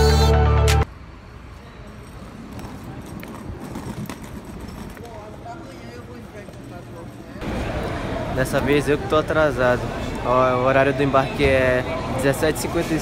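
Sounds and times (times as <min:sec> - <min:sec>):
murmur of distant voices: 0:01.2 - 0:13.0.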